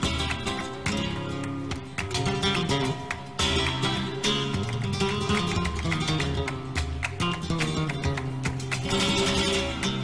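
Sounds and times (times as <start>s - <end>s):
flamenco guitar playing: 0.0s - 10.0s.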